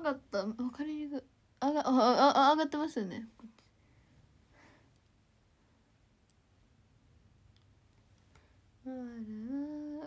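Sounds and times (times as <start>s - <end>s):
woman's drawn-out hum-like vocal: 8.8s - 10.0s.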